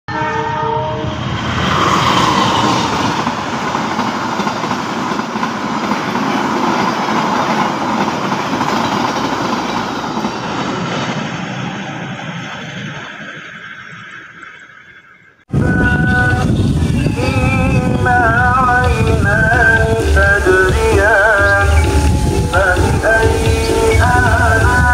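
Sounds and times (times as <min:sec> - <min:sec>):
train horn chord: 0:00.1 - 0:01.3
passenger train passing: 0:00.1 - 0:14.6, 0:15.5 - 0:24.9.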